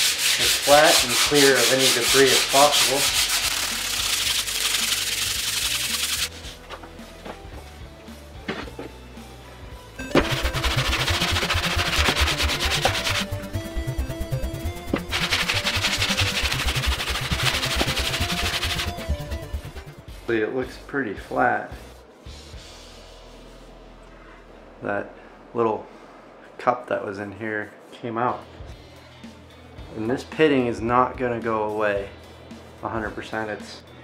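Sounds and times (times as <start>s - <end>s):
plane sole scraping on sandpaper: 0.0s - 6.6s, 10.2s - 13.3s, 14.9s - 19.2s
pad rubbing wooden bench: 10.2s - 13.4s, 14.8s - 19.3s.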